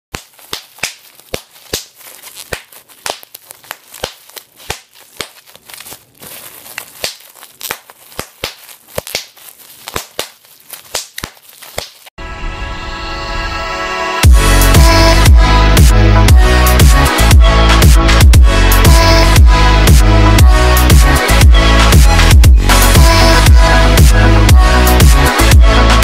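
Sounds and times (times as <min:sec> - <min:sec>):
bubble wrap popping: 0:00.1 - 0:12.2
plastic crinkling: 0:00.1 - 0:12.2.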